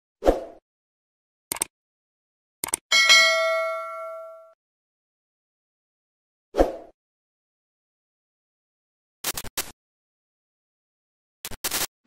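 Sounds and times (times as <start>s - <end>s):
notification bell ding: 2.9s - 4.6s.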